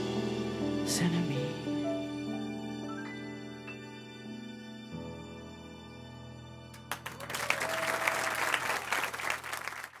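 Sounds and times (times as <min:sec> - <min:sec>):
piano and keyboard chord: 0:00.0 - 0:07.4
audience applause: 0:06.8 - 0:10.0.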